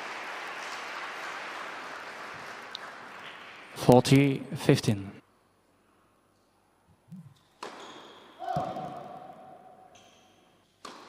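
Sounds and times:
tennis ball impact: 10.8 - 11.0.

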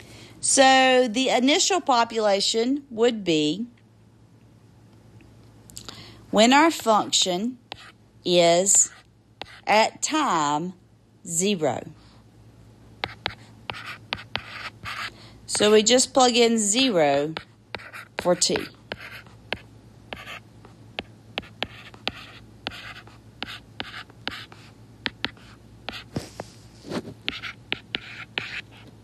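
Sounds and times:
stylus scratching strokes: 21.4 - 28.9.

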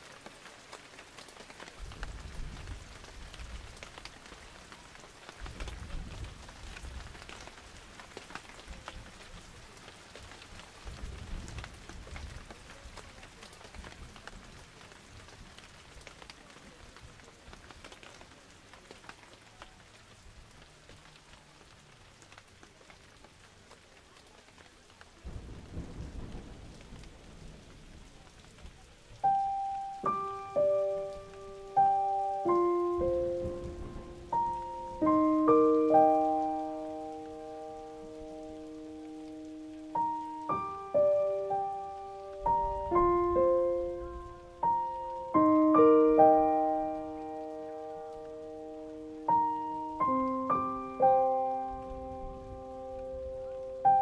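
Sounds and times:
crackly outdoor background noise: 0.0 - 54.0
sustained musical notes: 29.3 - 53.4.

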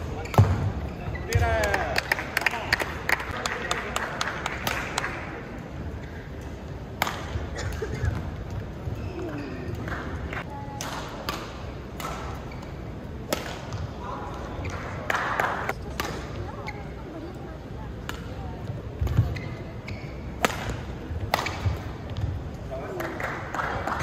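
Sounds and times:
rackets striking shuttlecock: 6.4 - 8.6, 9.7 - 13.9, 20.2 - 22.4.

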